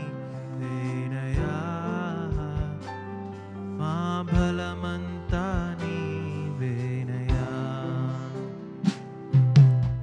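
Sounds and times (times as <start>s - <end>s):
worship music guitar and pad: 0.0s - 5.1s
drum hit: 8.8s - 10.0s.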